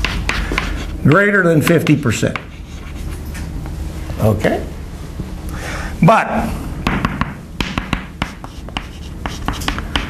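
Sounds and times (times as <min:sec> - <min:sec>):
chalk writing on chalkboard: 0:00.0 - 0:03.3, 0:07.2 - 0:10.0.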